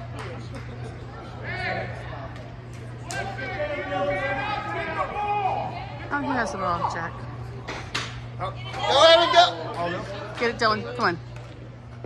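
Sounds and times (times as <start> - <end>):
spectators talking: 0.0 - 12.0
steady low hum: 0.0 - 12.0.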